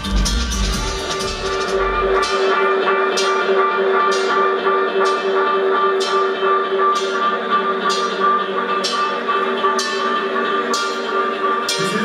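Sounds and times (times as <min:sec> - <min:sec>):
dub music through sound system: 0:00.0 - 0:12.0.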